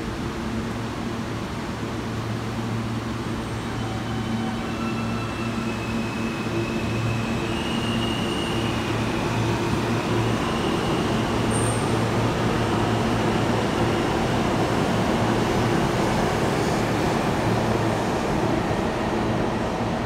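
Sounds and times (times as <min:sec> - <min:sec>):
subway train rumbling: 0:00.0 - 0:20.0
wheels on rail squealing: 0:03.4 - 0:12.1.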